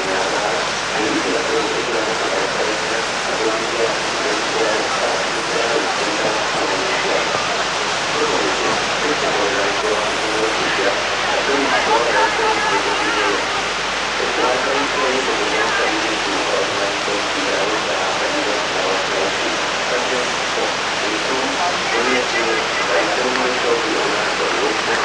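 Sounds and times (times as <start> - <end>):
indistinct voices talking: 0.0 - 25.0
rushing whitewater roar: 0.0 - 25.0.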